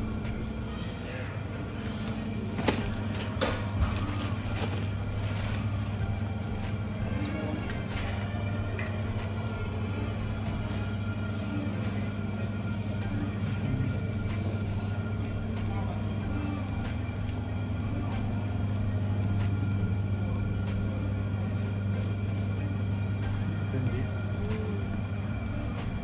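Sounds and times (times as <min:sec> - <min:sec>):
refrigerated freezers humming: 0:00.0 - 0:26.0.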